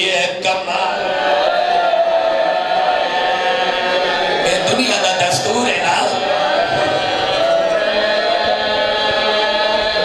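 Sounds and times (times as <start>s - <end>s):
voices wailing in lament: 0.0s - 10.0s.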